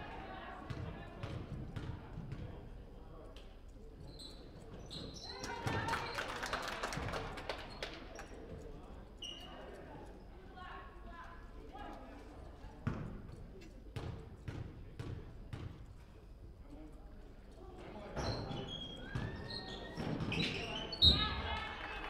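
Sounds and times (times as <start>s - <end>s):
voices echoing in gym: 0.0s - 22.0s
shoe squeaks: 4.0s - 5.5s, 9.2s - 9.7s, 18.2s - 21.4s.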